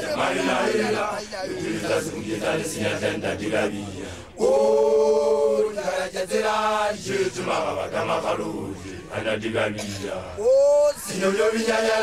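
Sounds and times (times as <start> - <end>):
young men chanting held notes: 0.0 - 12.0.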